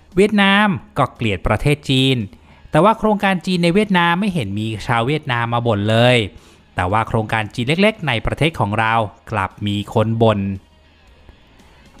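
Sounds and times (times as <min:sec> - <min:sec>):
faint background music: 0:00.0 - 0:12.0
man narrating: 0:00.1 - 0:10.6.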